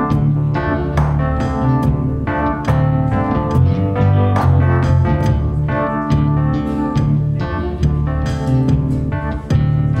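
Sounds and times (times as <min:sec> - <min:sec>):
low bass line: 0:00.0 - 0:10.0
organ-like keyboard chords: 0:00.0 - 0:10.0.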